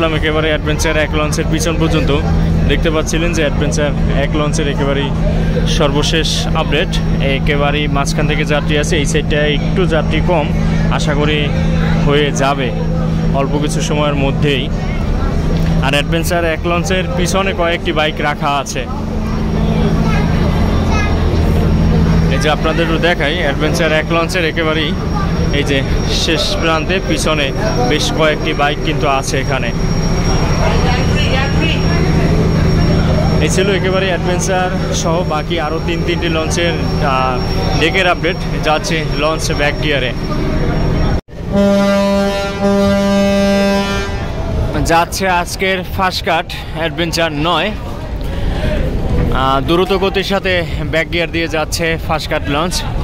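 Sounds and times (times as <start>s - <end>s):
man talking: 0.0s - 14.8s, 15.8s - 19.0s, 22.2s - 29.8s, 33.3s - 40.2s, 48.8s - 53.0s
boat engine droning: 0.0s - 53.0s
faint passengers' voices: 0.0s - 53.0s
boat horn long blast: 41.4s - 44.6s.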